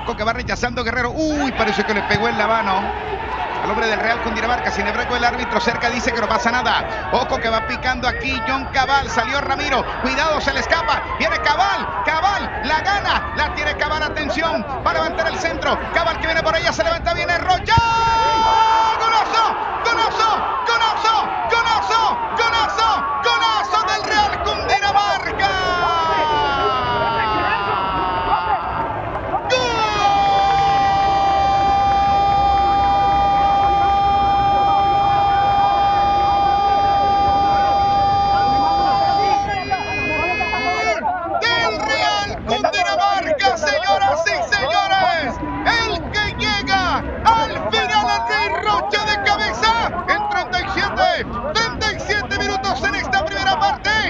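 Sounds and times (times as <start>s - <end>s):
commentator shouting excitedly: 0.0s - 54.0s.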